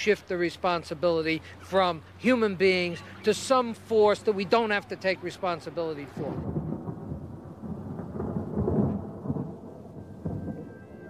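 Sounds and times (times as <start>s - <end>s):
thunder rumbling: 5.7s - 11.0s.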